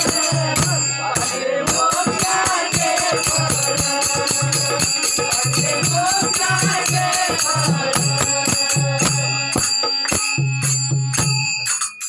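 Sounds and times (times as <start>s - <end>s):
voices singing: 0.0s - 10.1s
harmonium: 0.0s - 11.8s
hand cymbals clashing: 0.0s - 12.0s.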